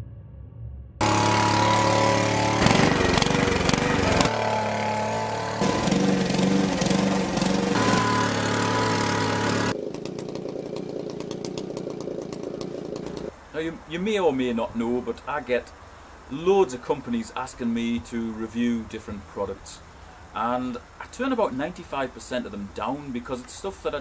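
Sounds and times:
petrol garden machines running: 1.0 - 13.3
lawn mower engine: 1.0 - 13.5
machine with fast regular rattle: 8.4 - 13.3.

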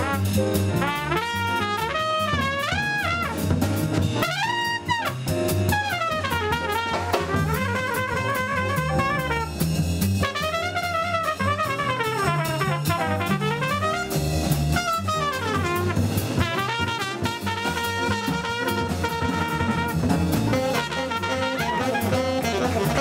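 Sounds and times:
drum kit with cymbals: 0.0 - 23.0
piano: 0.0 - 23.0
trumpet solo: 0.0 - 23.0
walking upright bass: 0.0 - 23.0.

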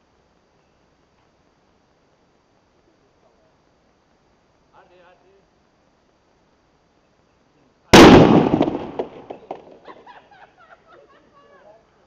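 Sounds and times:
plastic bottle exploding: 8.0 - 9.8.

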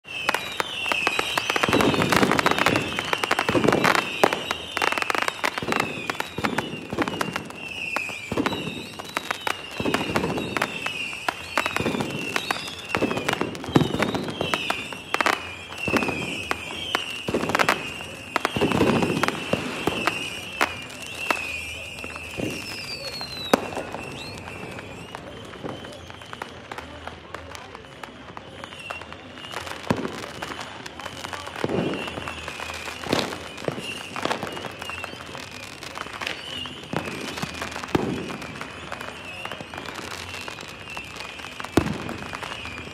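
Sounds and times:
falling firework whistles: 0.0 - 42.9
fireworks bangs and crackling: 0.0 - 42.9.

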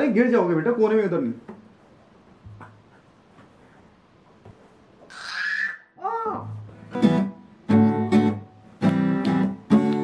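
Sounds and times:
infant squealing: 5.1 - 6.4.

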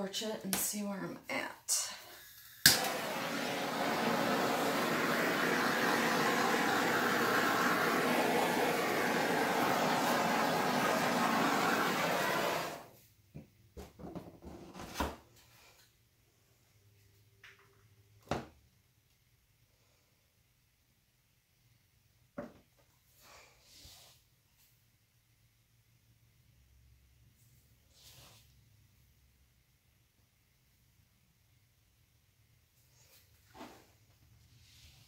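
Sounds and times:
flame torch hissing: 2.4 - 12.9.

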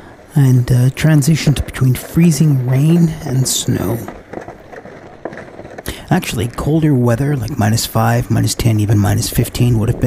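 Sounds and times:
footsteps crunching in snow: 1.0 - 9.1.

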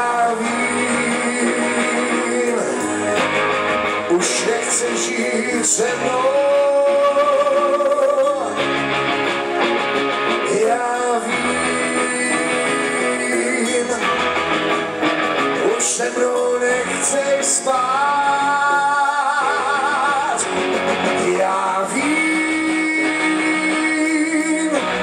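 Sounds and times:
drums: 0.0 - 25.0
electric guitar: 0.0 - 25.0
person singing: 0.0 - 25.0.

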